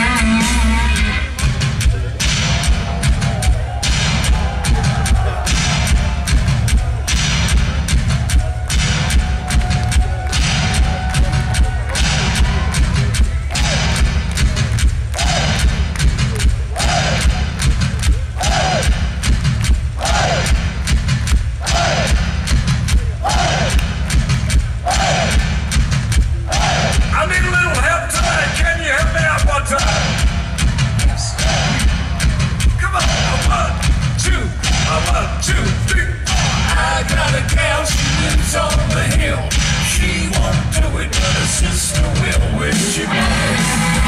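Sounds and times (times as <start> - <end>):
rock band playing: 0.0 - 44.0.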